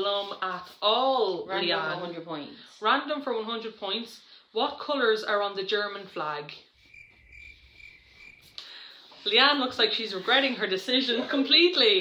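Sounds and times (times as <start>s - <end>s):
crickets chirping: 6.8s - 8.8s.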